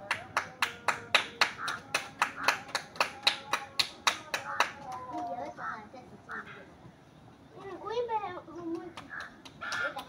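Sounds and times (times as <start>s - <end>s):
rhythmic hand claps: 0.0s - 5.3s, 8.6s - 10.0s
faint children's voices: 0.0s - 10.0s.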